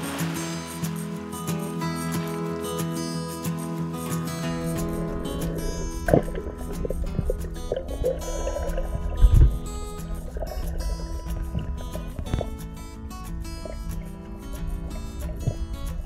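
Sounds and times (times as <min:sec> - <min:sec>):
background music with held notes: 0:00.0 - 0:16.0.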